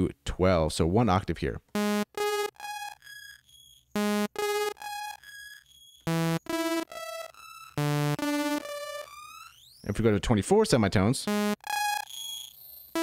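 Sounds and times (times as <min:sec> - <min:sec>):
sawtooth synth notes with echoes: 0:01.8 - 0:03.0, 0:04.0 - 0:05.2, 0:06.1 - 0:09.5, 0:11.3 - 0:12.0.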